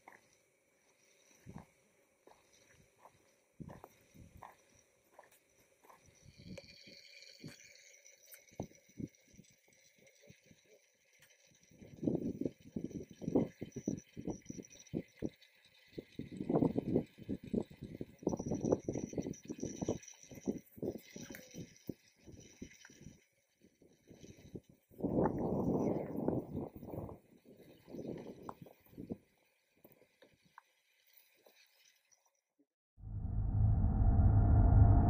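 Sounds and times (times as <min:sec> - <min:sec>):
wind rumbling on microphone: 0:11.7 - 0:29.4, 0:33.0 - 0:35.0.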